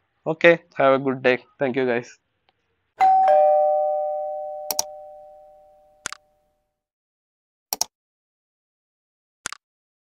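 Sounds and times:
ding-dong chime: 3.0 - 6.0
mouse clicks: 4.7 - 4.9, 7.7 - 7.9.

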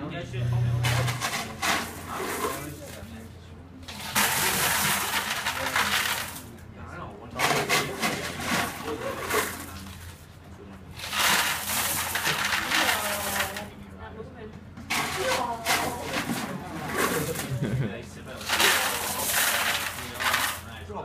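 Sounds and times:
indistinct voices talking: 0.0 - 6.3
steady low hum: 0.0 - 21.0.

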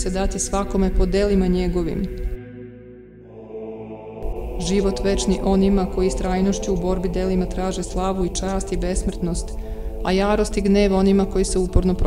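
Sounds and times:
soft ambient music: 0.0 - 12.0.

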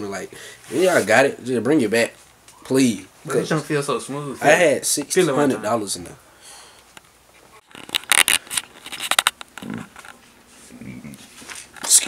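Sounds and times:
phone scraping and rustling: 7.6 - 10.6.

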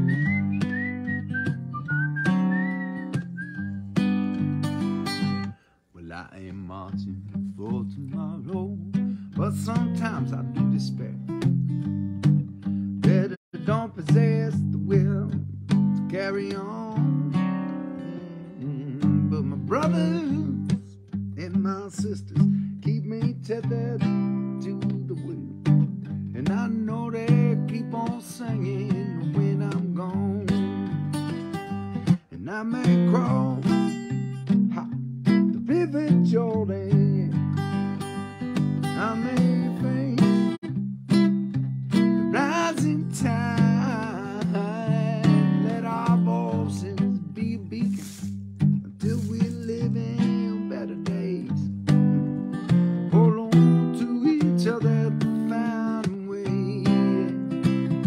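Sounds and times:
solo acoustic guitar folk tune: 0.0 - 58.0.

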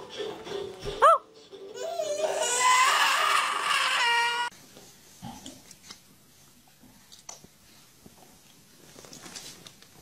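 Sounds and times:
baby crying: 1.0 - 4.5.

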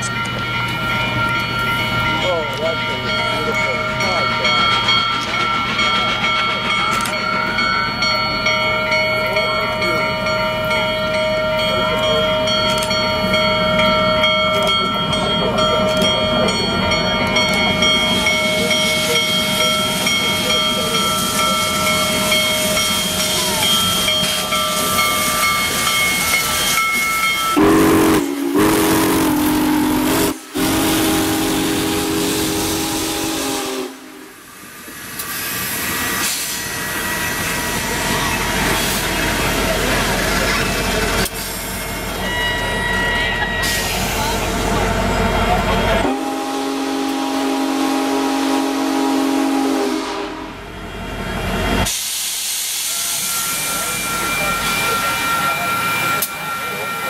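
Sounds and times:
steam hiss: 18.2 - 41.9, 51.7 - 57.0
steam whistle chord: 27.5 - 34.4, 46.0 - 50.6.

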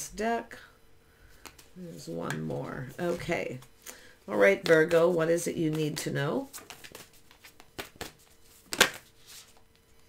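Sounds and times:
cards being shuffled: 1.4 - 3.7, 4.4 - 9.6.

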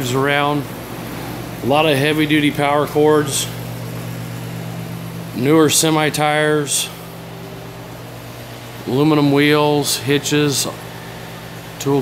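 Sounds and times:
fan low hum with hiss: 0.0 - 12.0.

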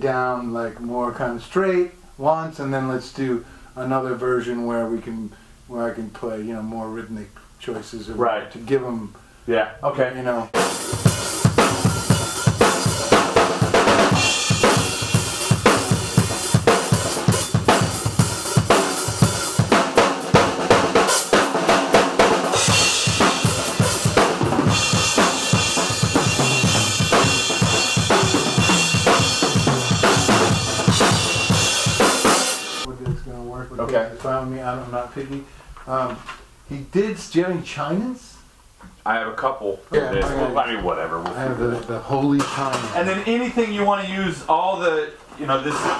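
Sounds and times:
cymbals washing: 10.6 - 32.9
snare drum strokes: 10.6 - 32.9.

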